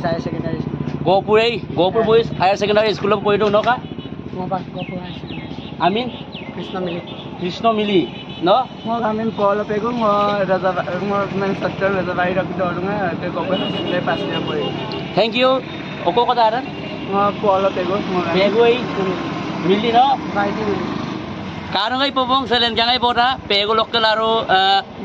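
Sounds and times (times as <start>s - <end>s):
men talking: 0.0s - 25.0s.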